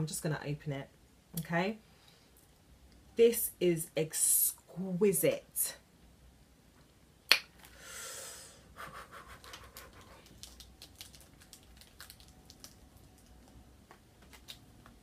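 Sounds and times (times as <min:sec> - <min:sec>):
wrapping crackling: 0:09.4 - 0:15.0
packaging rustling: 0:09.6 - 0:15.0.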